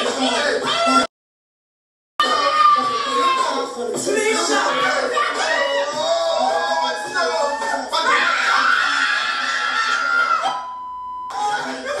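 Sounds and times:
excited voices: 0.0 - 1.1, 2.2 - 10.7
high held shout: 0.0 - 1.1, 2.2 - 10.7
high beep-like tone: 10.5 - 11.4.

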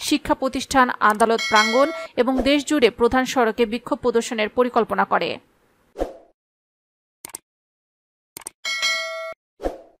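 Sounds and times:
mouse clicks: 1.0 - 1.3
notification bell ding: 1.4 - 2.1, 8.7 - 9.4.

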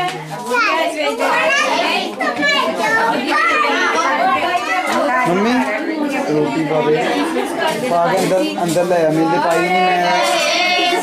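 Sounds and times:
crowd of voices chattering: 0.0 - 11.0.

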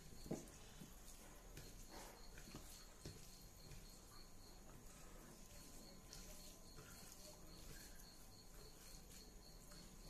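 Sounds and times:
fingers mixing food in steel bowl: 0.0 - 10.0.

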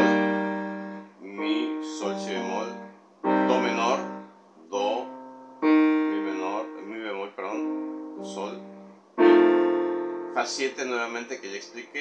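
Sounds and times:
electronic keyboard piano chords: 0.0 - 12.0.

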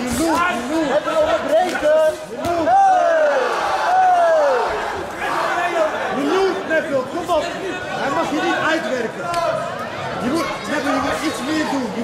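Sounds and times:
people talking and shouting: 0.0 - 12.0.

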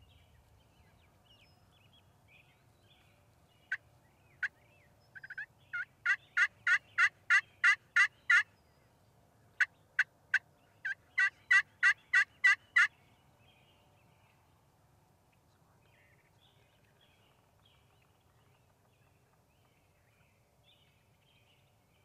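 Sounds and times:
turkey yelping: 5.2 - 8.4, 10.0 - 12.9.

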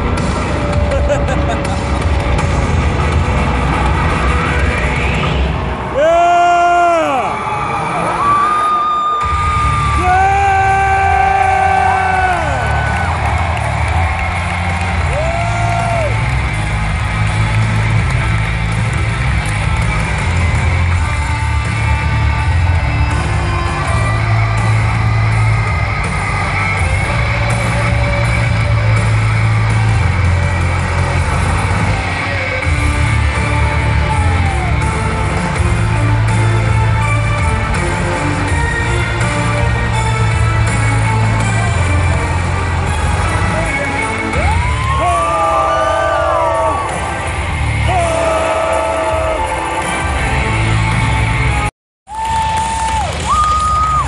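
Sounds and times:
loud music with heavy bass beat: 0.0 - 8.5, 9.2 - 54.0
large crowd noise: 0.0 - 54.0
crowd shouting: 44.4 - 49.9.

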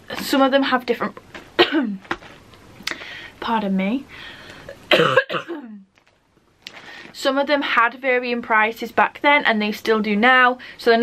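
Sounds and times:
woman coughing: 1.6 - 2.0, 4.9 - 5.8.

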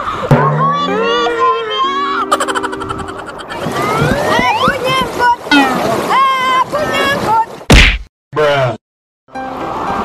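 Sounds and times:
comic whack sound effect: 7.7 - 8.1.

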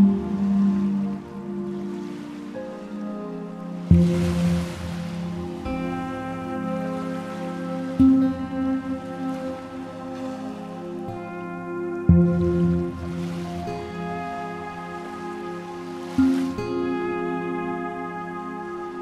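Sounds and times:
slow chillout music: 0.0 - 19.0.

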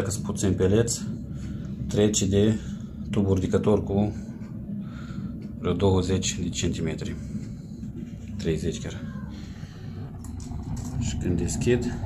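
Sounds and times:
pellet stove low rumble: 0.0 - 12.0.

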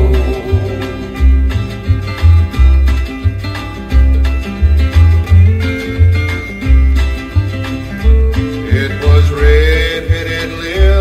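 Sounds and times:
bass line: 0.0 - 11.0
country music: 0.0 - 11.0
plucked strings: 0.0 - 11.0.

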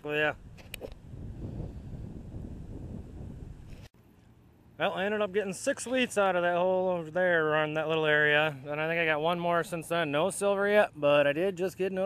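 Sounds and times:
wind buffeting microphone: 0.0 - 4.0.

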